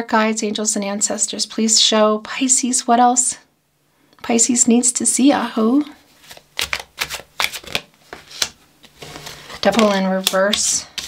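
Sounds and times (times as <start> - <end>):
cards being shuffled: 6.1 - 11.0.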